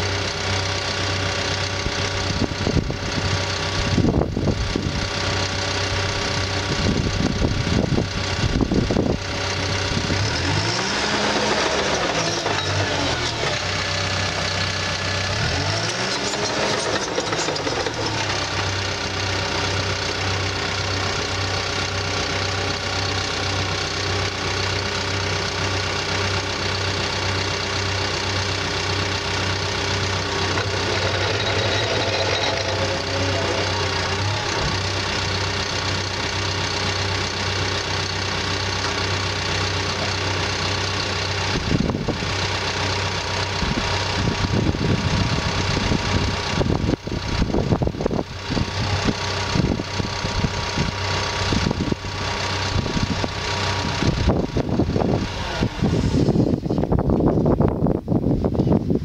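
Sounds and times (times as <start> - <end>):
bulldozer diesel engine running: 0.0 - 59.0
wind buffeting microphone: 43.6 - 59.0.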